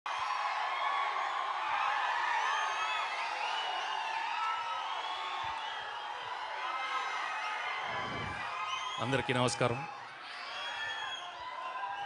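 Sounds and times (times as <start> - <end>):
crowd cheering and shouting: 0.1 - 12.0.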